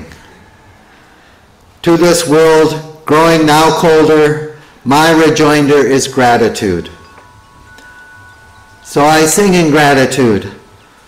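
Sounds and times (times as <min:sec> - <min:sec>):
faint chime-like ringing tones: 0:06.6 - 0:11.0.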